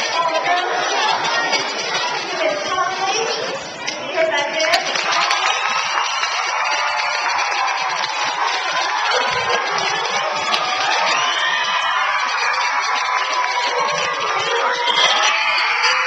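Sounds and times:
clapping: 4.6 - 14.4
children cheering and shouting: 4.8 - 16.0.

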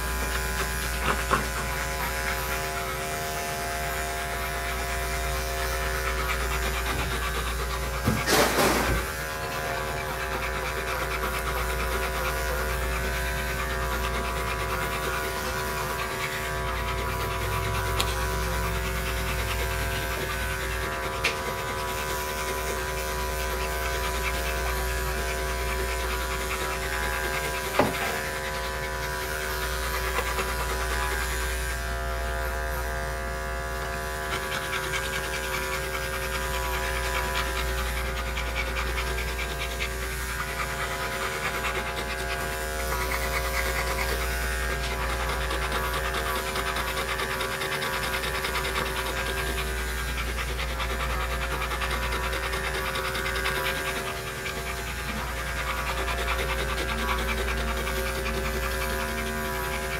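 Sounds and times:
dog panting: 0.0 - 59.9
electric clippers whining: 0.0 - 59.9.

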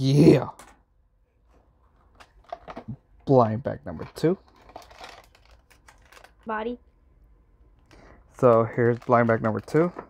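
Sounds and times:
cardboard packaging rustling: 4.4 - 6.4, 8.3 - 10.0.

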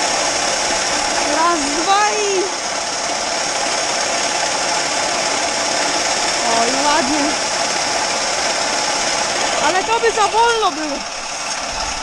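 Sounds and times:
auger machinery hum: 0.0 - 12.0
grain pouring hiss: 0.0 - 12.0.

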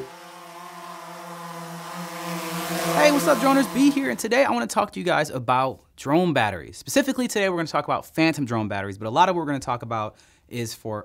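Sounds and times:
drone propeller buzzing: 0.0 - 4.3
rising whoosh: 0.0 - 4.3.

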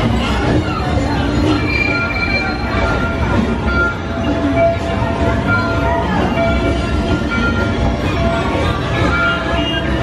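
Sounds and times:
low train rumble and chugging: 0.0 - 10.0.

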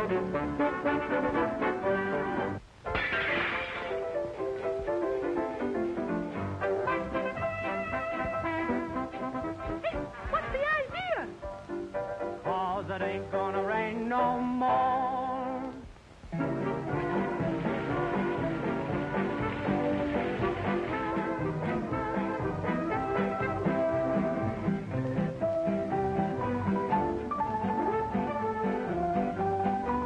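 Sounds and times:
cartoon band music: 0.0 - 11.4, 16.4 - 24.8
noisy crash: 2.8 - 4.3.

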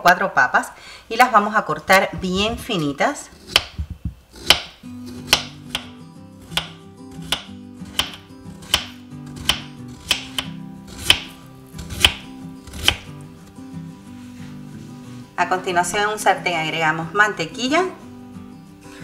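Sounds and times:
soft background music: 2.2 - 19.0
knife tapping cutting board: 3.5 - 11.4, 12.0 - 12.2.

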